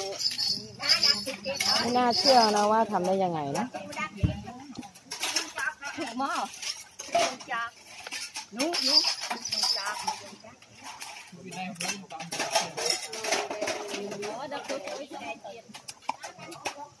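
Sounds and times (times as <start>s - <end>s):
bystanders talking: 0.0s - 17.0s.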